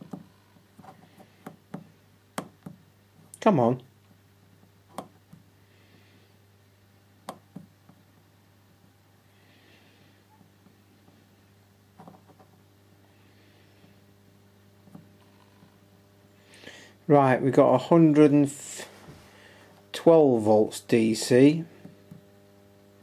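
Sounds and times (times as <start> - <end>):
faint electrical hum: 0.0 - 23.0.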